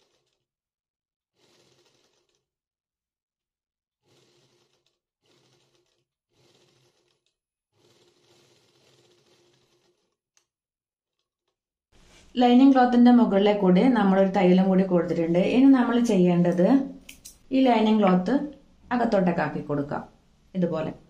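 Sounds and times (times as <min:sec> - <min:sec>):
faint soft rustling: 0:12.0 - 0:12.4.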